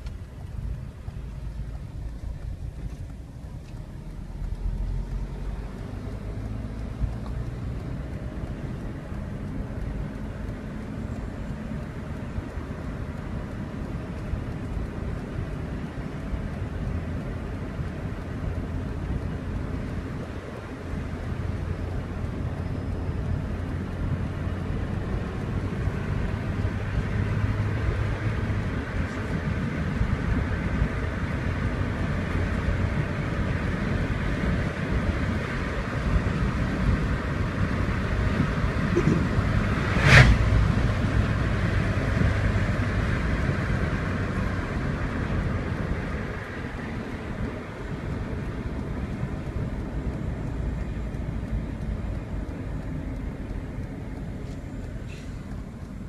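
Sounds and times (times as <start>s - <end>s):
car engine and tyre noise: 0.0s - 56.0s.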